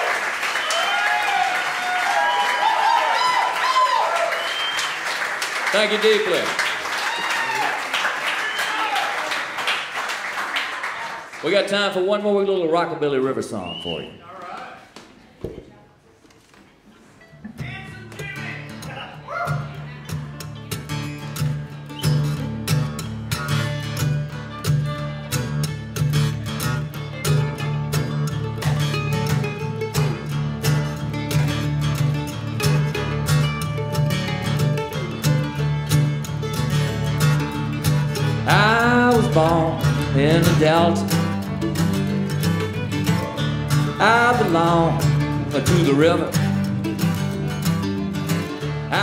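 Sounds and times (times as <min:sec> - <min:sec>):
rockabilly band playing: 0:00.0 - 0:08.6, 0:17.1 - 0:49.0
guitar: 0:00.0 - 0:09.8, 0:16.3 - 0:49.0.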